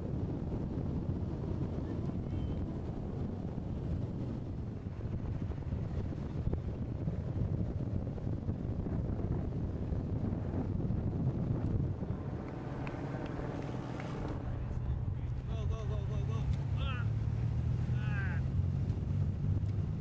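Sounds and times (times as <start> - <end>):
wind buffeting microphone: 0.0 - 16.5.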